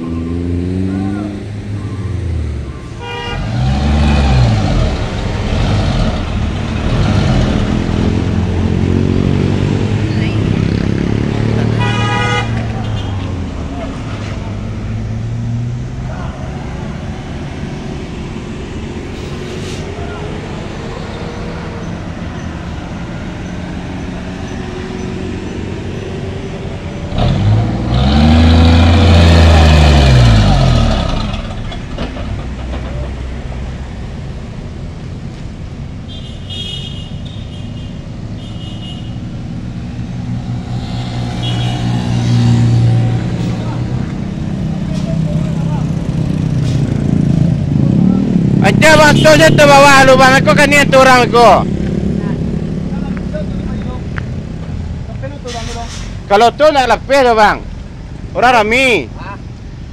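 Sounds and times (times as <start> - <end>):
diesel truck engine revving: 0.0 - 12.1, 14.5 - 34.0, 39.2 - 56.2
vehicle horn toot: 3.0 - 3.5, 11.8 - 13.2, 36.1 - 39.2, 41.4 - 41.9.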